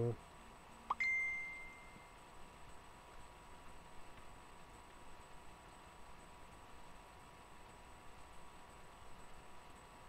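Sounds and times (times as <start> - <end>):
bright ringing ding: 0.9 - 2.2.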